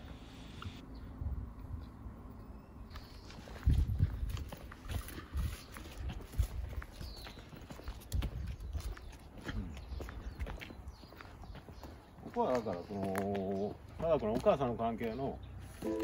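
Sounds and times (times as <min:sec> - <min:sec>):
footsteps on asphalt: 0:02.9 - 0:16.0.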